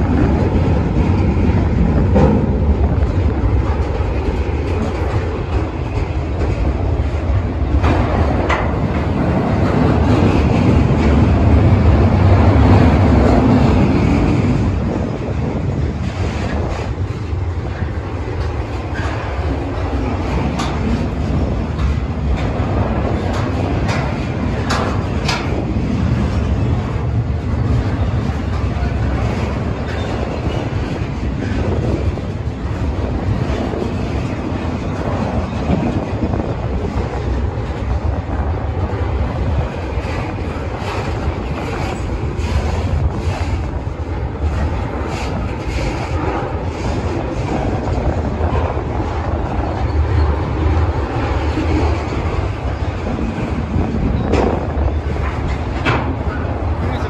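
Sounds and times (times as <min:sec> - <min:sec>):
steel wheels rumbling on rail: 0:00.0 - 0:57.0.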